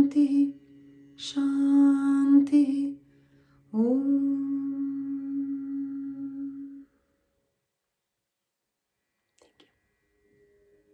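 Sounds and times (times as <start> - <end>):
woman humming low note: 3.7 - 6.9.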